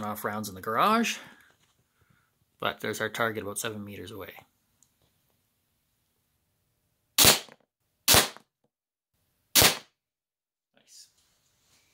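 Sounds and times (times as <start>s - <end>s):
pellet gun shots: 7.2s - 8.5s, 9.5s - 10.0s.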